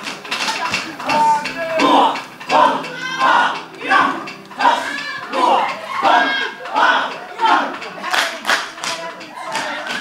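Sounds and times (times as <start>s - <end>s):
hand claps and slaps: 0.0s - 1.3s, 7.8s - 10.0s
group chanting in unison: 1.8s - 8.0s.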